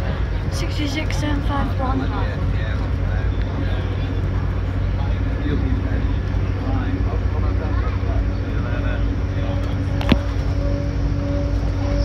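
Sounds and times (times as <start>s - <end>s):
steady hum: 0.0s - 12.0s
train wheels rumbling on track: 0.0s - 12.0s
voices in carriage: 0.0s - 12.0s.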